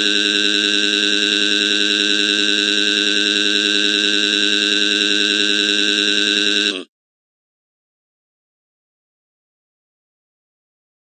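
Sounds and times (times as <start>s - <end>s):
synthetic voice crying wail: 6.6s - 6.8s.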